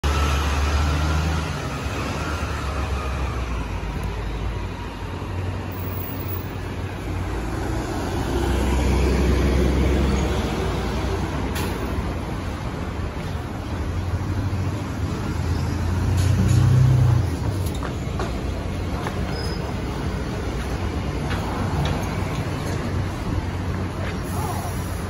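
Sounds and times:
background road traffic: 0:00.0 - 0:25.0.

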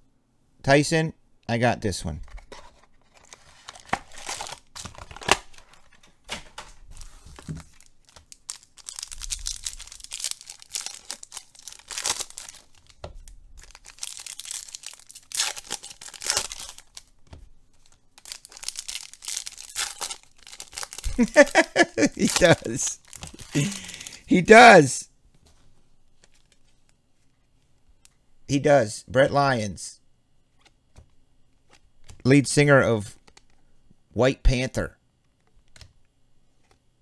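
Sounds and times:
foil wrappers crinkling and tearing: 0:03.1 - 0:06.0, 0:07.0 - 0:17.1, 0:17.8 - 0:24.2.

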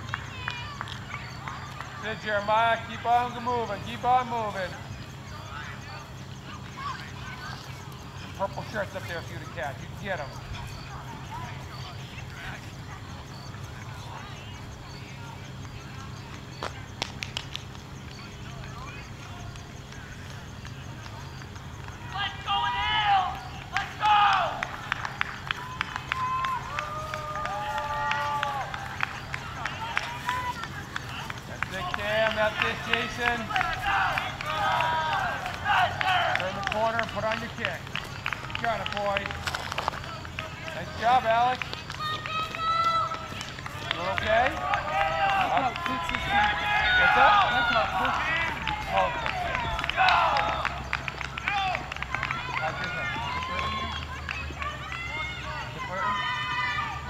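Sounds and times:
people shouting encouragement: 0:00.0 - 0:17.0, 0:18.1 - 0:57.0.

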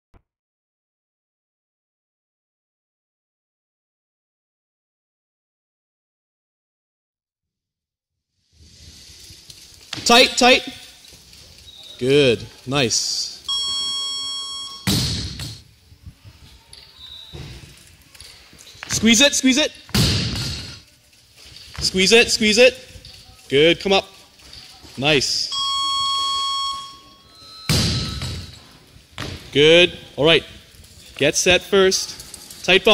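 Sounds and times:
electronic buzzer tone: 0:13.5 - 0:15.0, 0:25.5 - 0:28.5.

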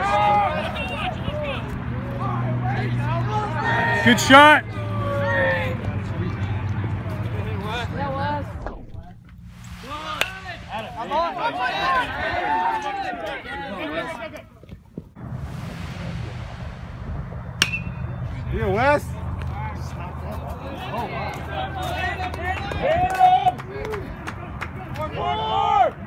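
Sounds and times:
spectators shouting: 0:00.0 - 0:06.0, 0:09.8 - 0:14.2, 0:19.2 - 0:26.0
metal bat hitting ball: 0:10.1 - 0:10.8, 0:17.6 - 0:18.2.

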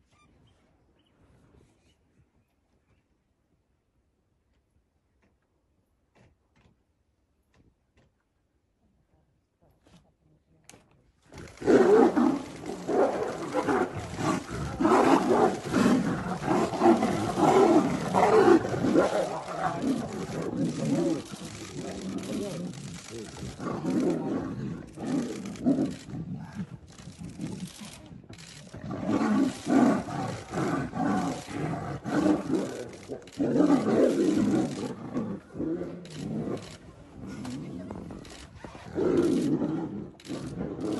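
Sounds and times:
tigers roaring: 0:11.4 - 0:40.9.

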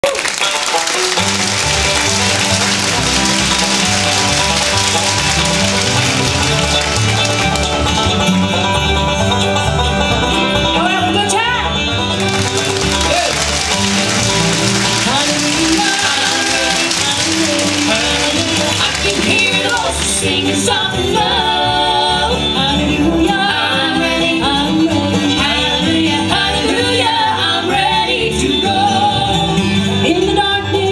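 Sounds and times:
bluegrass band playing: 0:00.0 - 0:30.9.

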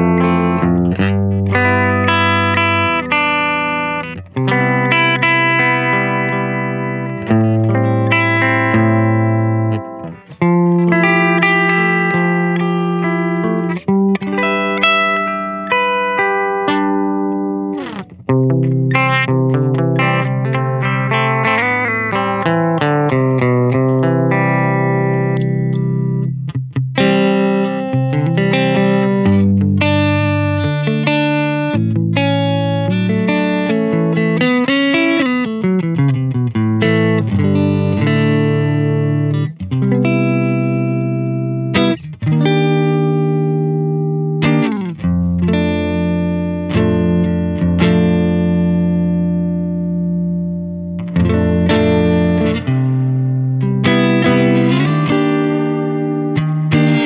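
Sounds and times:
electric guitar through tube amp: 0:00.0 - 0:57.0.

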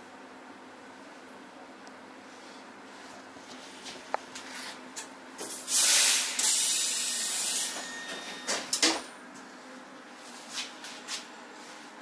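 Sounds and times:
air hiss of train doors: 0:05.4 - 0:06.9.

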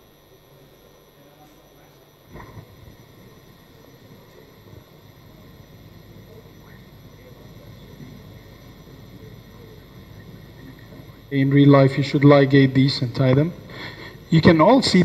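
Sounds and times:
faint electrical whine: 0:00.0 - 0:15.0.

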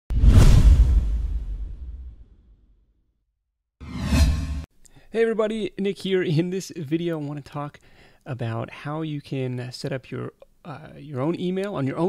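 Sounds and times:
whoosh sound effect: 0:03.8 - 0:04.7.

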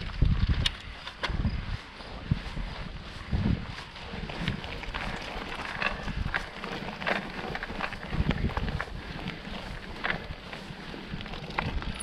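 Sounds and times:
bike clicks and rattles: 0:00.0 - 0:12.0
tyres rolling on gritty dirt: 0:00.0 - 0:12.0
wind rumble on microphone: 0:00.0 - 0:12.0.

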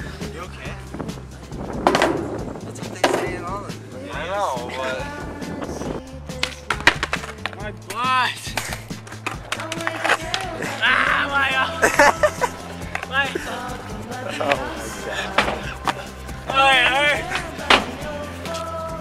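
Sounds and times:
pop-rock music: 0:00.0 - 0:19.0
skateboard rolling on asphalt: 0:01.2 - 0:03.4
skateboard clacks: 0:01.8 - 0:03.4, 0:06.4 - 0:07.6, 0:08.5 - 0:10.6.

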